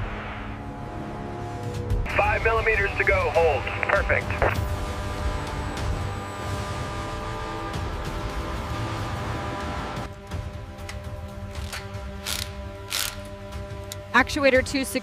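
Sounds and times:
background music: 0.0 - 15.0
ratchet-like clicking: 11.6 - 13.3
sharp metallic clicks: 11.6 - 13.3.

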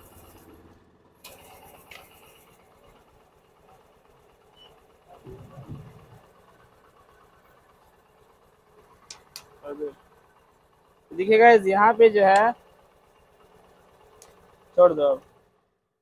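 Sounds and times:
electric fuel pump running: 0.0 - 15.8.

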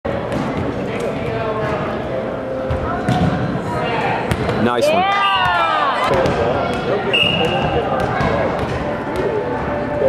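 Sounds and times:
volleyball thumps: 5.4 - 9.3.

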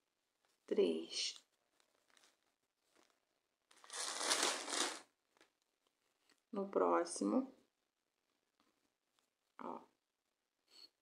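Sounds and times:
hands and yarn rustling: 0.0 - 6.5.

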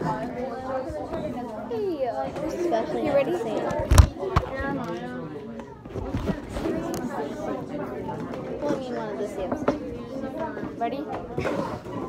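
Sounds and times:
girls talking and chattering: 0.0 - 12.0.

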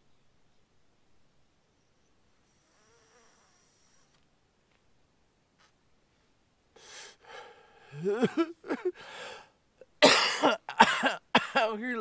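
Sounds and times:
flying insect buzzing: 1.7 - 4.2.

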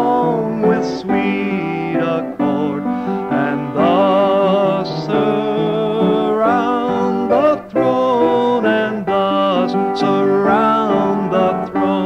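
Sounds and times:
hymn sung with vibrato: 0.0 - 12.0
instrumental accompaniment: 0.0 - 12.0.

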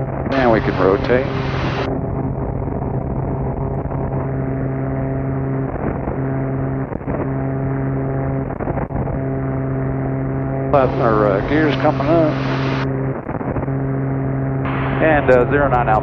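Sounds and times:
aircraft engines droning: 0.0 - 16.0.

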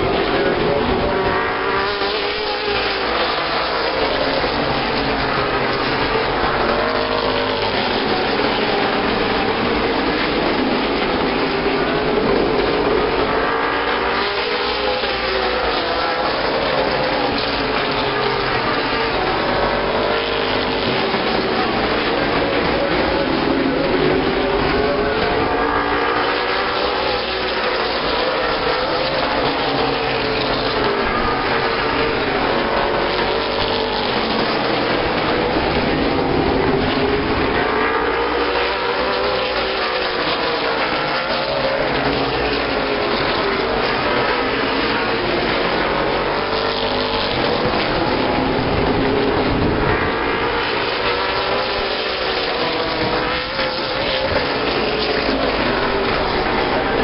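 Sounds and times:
race car engines at full throttle: 0.0 - 57.0.

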